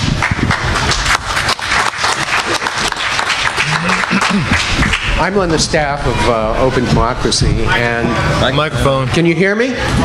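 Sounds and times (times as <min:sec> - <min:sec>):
audience applauding: 0:00.0 - 0:05.7.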